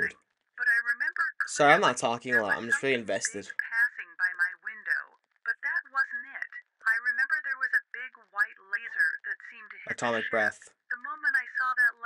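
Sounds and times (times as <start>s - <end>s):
narrating voice filtered like telephone: 0.0s - 12.0s.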